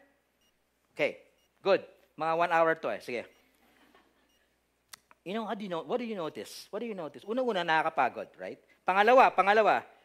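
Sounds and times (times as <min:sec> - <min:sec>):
man speaking into a microphone: 0:01.0 - 0:03.4, 0:05.2 - 0:10.0.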